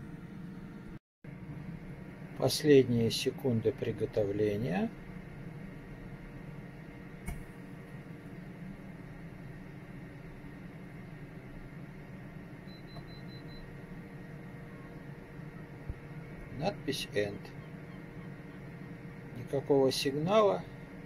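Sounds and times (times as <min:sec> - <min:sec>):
air fryer fan whirring: 0:00.0 - 0:21.0
air fryer click: 0:07.2 - 0:07.5.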